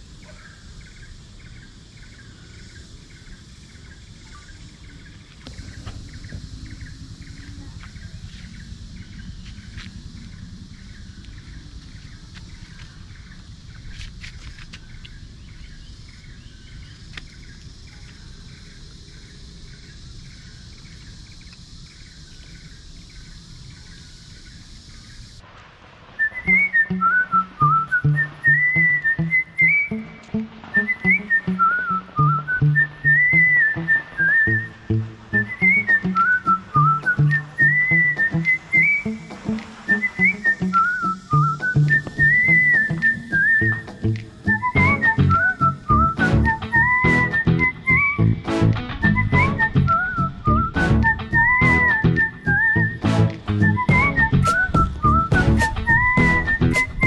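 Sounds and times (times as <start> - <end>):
whistled melody: 26.2 - 57.0
plucked bass line: 43.6 - 52.2, 52.8 - 57.0
percussion beat: 48.6 - 50.0, 53.0 - 57.0.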